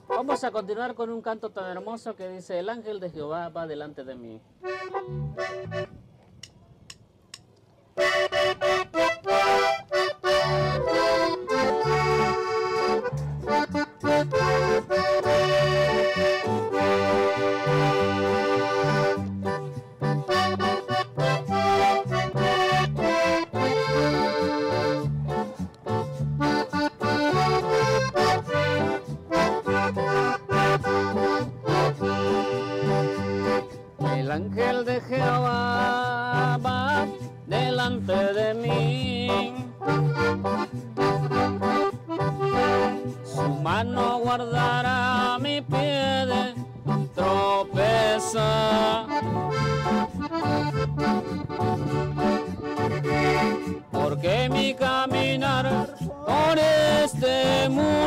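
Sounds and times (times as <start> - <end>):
accordion melody: 0.0 - 2.4, 4.6 - 6.1, 8.0 - 58.0
keyboard: 0.0 - 58.0
bass line: 4.6 - 6.2, 8.0 - 58.0.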